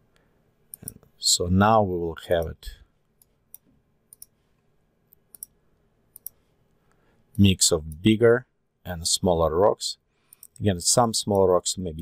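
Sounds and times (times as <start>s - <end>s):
computer mouse clicks: 3.2s - 4.4s, 5.1s - 6.4s.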